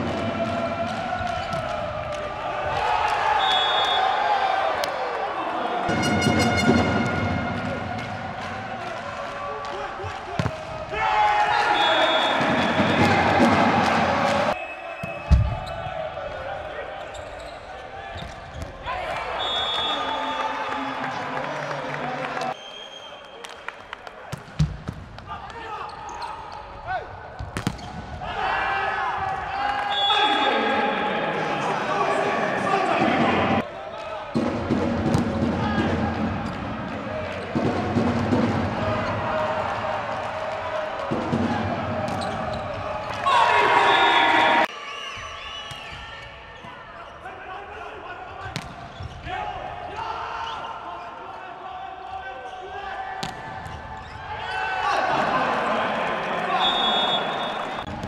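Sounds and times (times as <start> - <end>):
players shouting: 0.0 - 22.5, 27.8 - 44.8, 45.8 - 58.0
crowd cheering: 0.0 - 24.6, 28.2 - 48.5, 49.2 - 58.0
volleyball strikes: 10.3 - 11.0, 27.4 - 28.3, 34.4 - 35.6, 53.2 - 54.0
sneaker squeaks on court: 27.6 - 28.0, 48.6 - 49.2.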